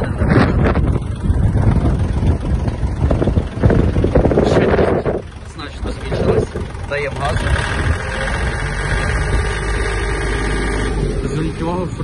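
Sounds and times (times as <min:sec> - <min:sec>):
tractor diesel engine at high revs: 0:00.0 - 0:12.0.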